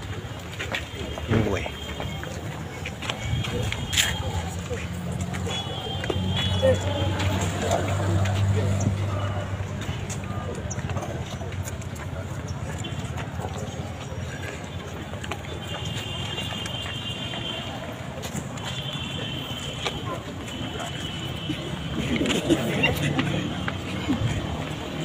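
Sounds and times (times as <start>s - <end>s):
people chattering outdoors: 0.0s - 25.0s
steady background noise: 0.0s - 25.0s.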